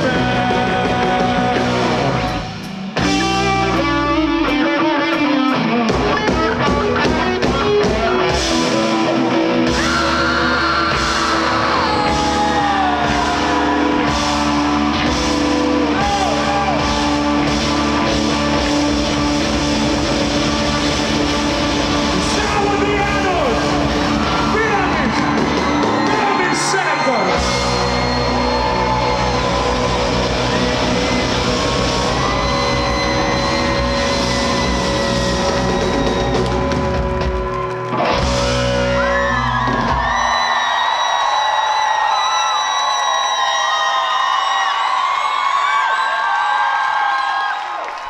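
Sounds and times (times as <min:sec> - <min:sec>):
shouted lead vocal: 0:00.0 - 0:04.3, 0:06.1 - 0:18.1, 0:22.1 - 0:36.9
rock band playing loudly: 0:00.0 - 0:40.8.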